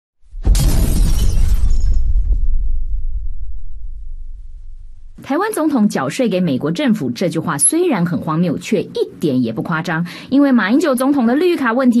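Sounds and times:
loud shattering crash: 0.3s - 5.2s
low rumble: 0.3s - 5.2s.

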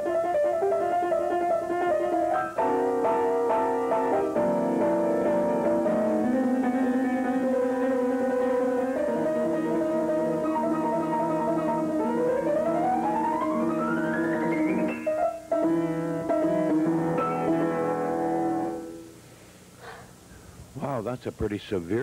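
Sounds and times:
solo piano playing: 0.0s - 19.2s.

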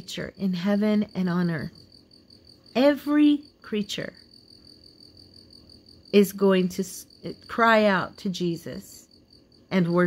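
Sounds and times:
person speaking: 9.7s - 10.0s.

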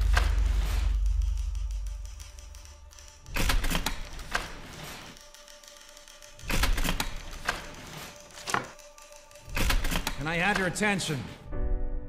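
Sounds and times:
deep low rumble: 0.0s - 2.8s
typewriter keystrokes: 0.0s - 10.9s.

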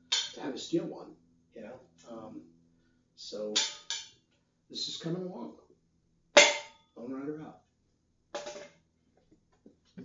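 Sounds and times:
steel shield struck with metallic ring: 6.4s - 6.8s.

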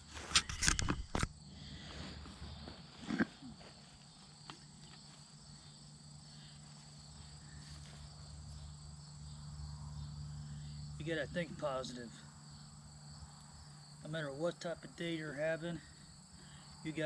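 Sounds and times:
crickets chirping: 0.0s - 17.0s.

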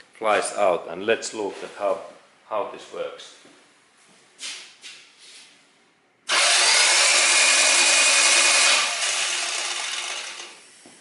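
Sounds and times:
engine cranking on starter motor: 6.3s - 10.6s.

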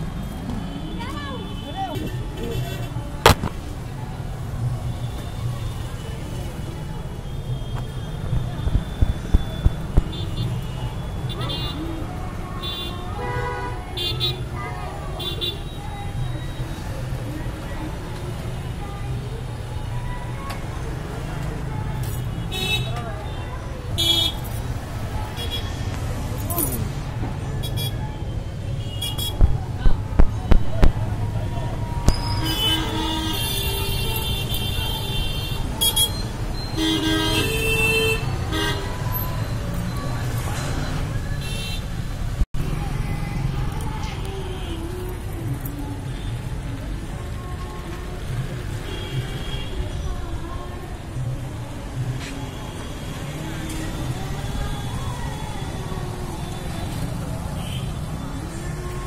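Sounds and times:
traffic: 0.0s - 59.0s
loud sharp crack: 3.2s - 3.8s.

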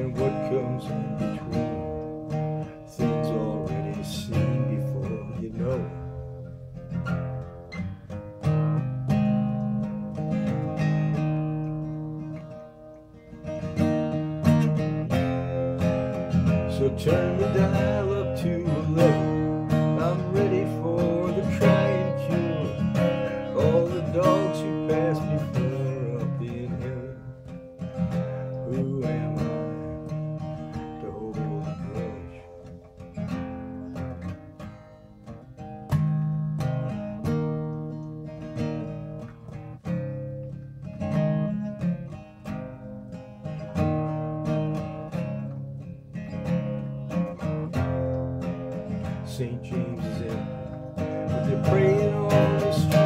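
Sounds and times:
acoustic guitar strummed: 0.0s - 53.0s.

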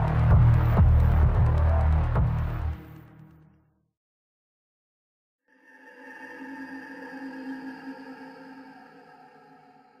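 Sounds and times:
eerie chord drone: 0.0s - 3.4s, 5.5s - 10.0s.

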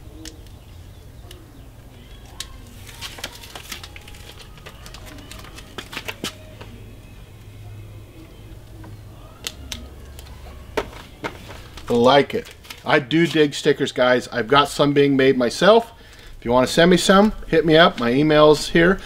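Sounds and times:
low background hum: 0.0s - 19.0s
sticker peeling paper crackle: 2.0s - 6.4s, 9.4s - 13.5s.

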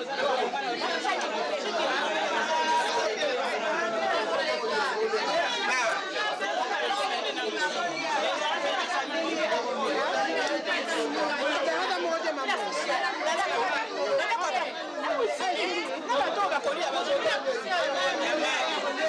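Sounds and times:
babble of overlapping voices: 0.0s - 19.0s.

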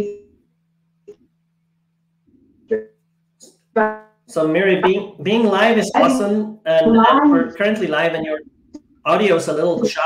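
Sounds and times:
faint steady hum: 0.0s - 10.0s
woman's voice on call: 3.8s - 4.0s, 6.0s - 7.6s.

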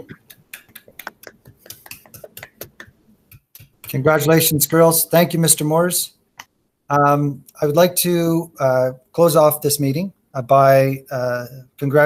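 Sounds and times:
hand clapping: 0.0s - 4.3s.

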